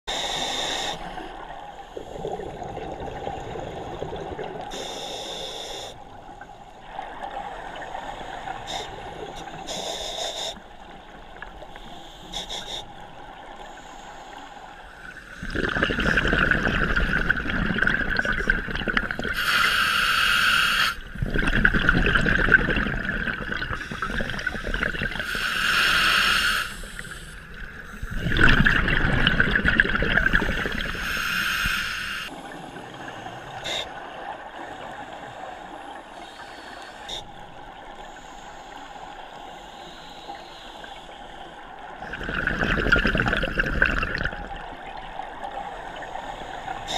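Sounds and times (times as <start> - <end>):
scuba regulator inhalations: 0.1 - 1.3, 4.7 - 6.1, 8.4 - 10.7, 11.8 - 18.6, 19.2 - 21.4, 22.4 - 28.8, 29.4 - 34.0, 34.6 - 37.5, 45.6 - 46.9
gurgling exhaled bubbles: 2.0 - 4.8, 15.2 - 19.5, 21.1 - 25.4, 27.0 - 31.3, 42.0 - 45.6.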